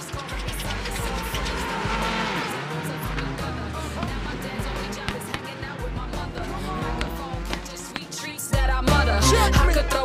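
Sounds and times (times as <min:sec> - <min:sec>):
race car engines passing: 0:00.0 - 0:09.5
hip-hop music with heavy bass: 0:00.0 - 0:10.0.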